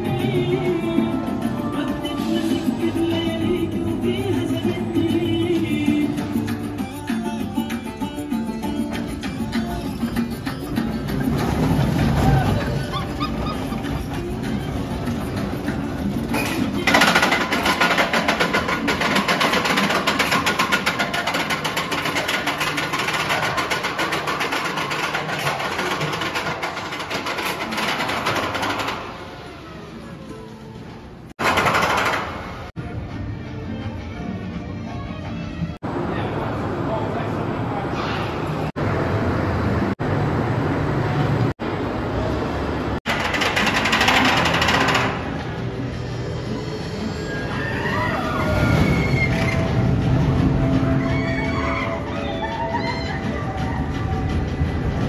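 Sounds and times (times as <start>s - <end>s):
background music: 0.0s - 23.7s, 32.3s - 36.3s, 45.2s - 55.0s
roller coaster rattling on track: 9.0s - 29.7s, 31.3s - 32.7s, 42.2s - 55.0s.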